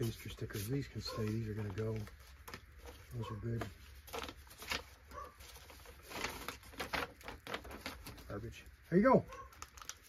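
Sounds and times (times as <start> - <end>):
paper rustling: 0.0 - 10.0.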